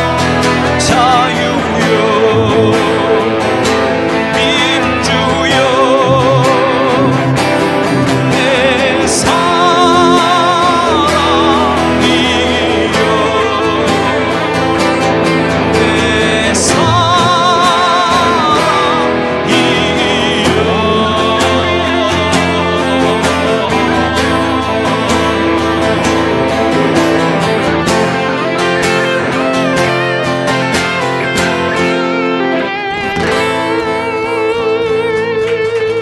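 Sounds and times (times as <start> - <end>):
acoustic guitar accompaniment: 0.0 - 36.0
electric guitar lead: 0.0 - 36.0.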